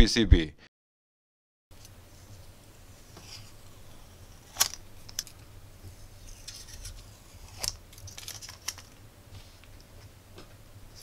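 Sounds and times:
film peeling with faint rustling: 1.8 - 10.0.

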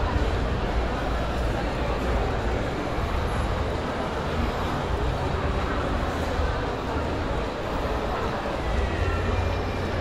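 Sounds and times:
shopping mall din: 0.0 - 10.0.

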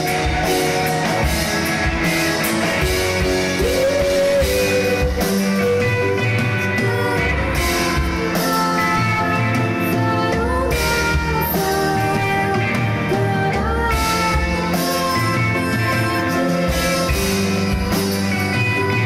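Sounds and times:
drum kit: 0.0 - 19.0
electric guitar: 0.0 - 19.0
keyboard: 0.0 - 19.0.

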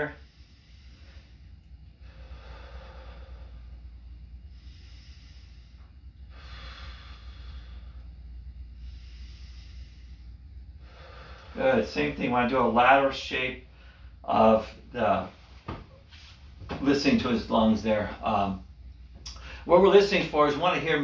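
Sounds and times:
man breathing deeply: 0.0 - 12.1, 13.6 - 14.8, 18.0 - 19.8.

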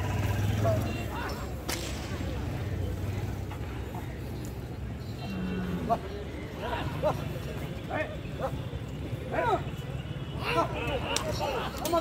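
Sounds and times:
sharp crack: 1.6 - 2.4.

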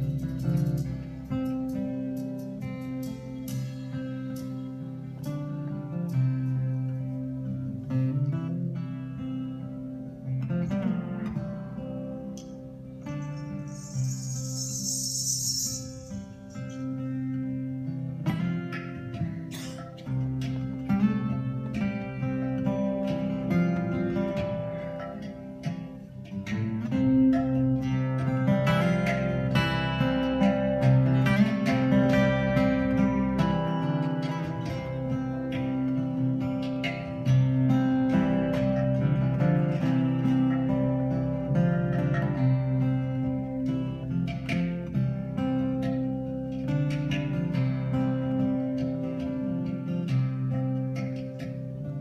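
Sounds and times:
acoustic guitar playing: 0.0 - 52.0
hand percussion drums: 13.2 - 16.8.

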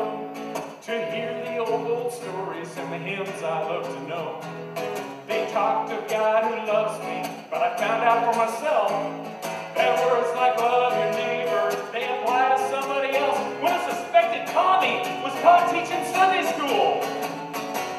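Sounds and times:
man singing: 0.0 - 4.5, 5.1 - 17.3
strummed acoustic guitar: 0.0 - 17.9.

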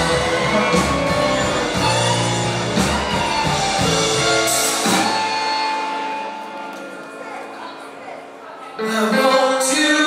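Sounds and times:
rock band chord ringing: 0.0 - 6.7.

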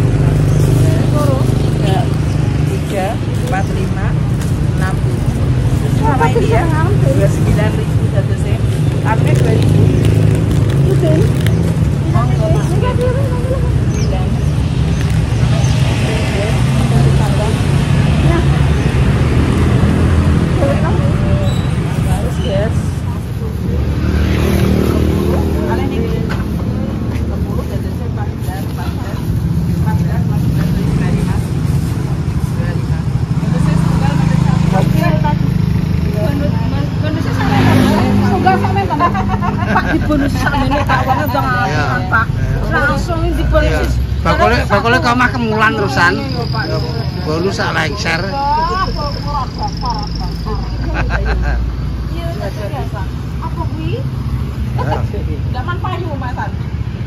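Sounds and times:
motorbikes passing: 0.0 - 57.0
people talking and bargaining: 0.0 - 57.0
road traffic rumble: 0.0 - 57.0.

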